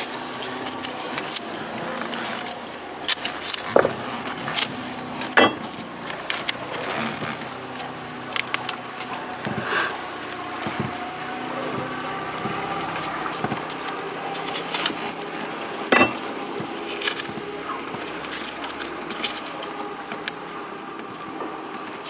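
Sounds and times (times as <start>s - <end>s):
masking tape tearing and crackling: 0.0s - 15.6s, 16.2s - 22.0s.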